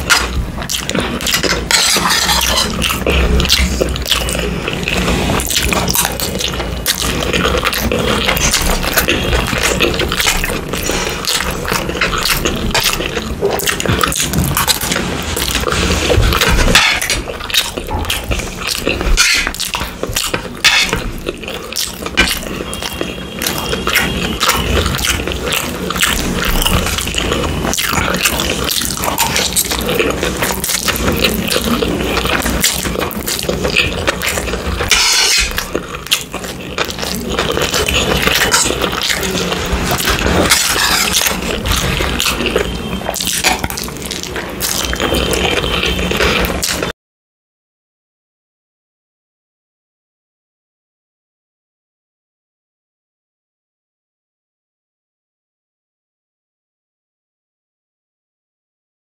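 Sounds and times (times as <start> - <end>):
wet chewing and slurping: 0.0 - 46.9
metal spoon scraping plate: 1.4 - 3.0, 16.6 - 17.3, 19.1 - 19.6, 20.6 - 21.1, 34.8 - 35.7, 39.8 - 41.6.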